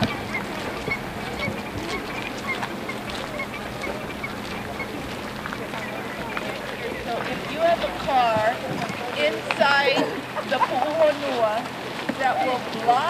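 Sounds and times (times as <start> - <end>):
geese honking: 0.0 - 8.7.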